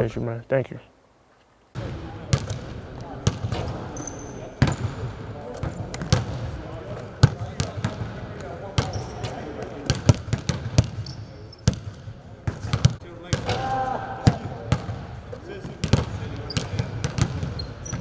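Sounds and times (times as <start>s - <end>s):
basketballs bouncing on court: 1.8s - 18.0s.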